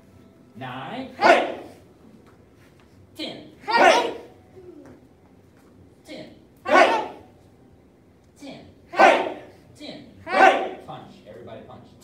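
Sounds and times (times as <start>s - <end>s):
person shouting hey: 3.6s - 4.3s.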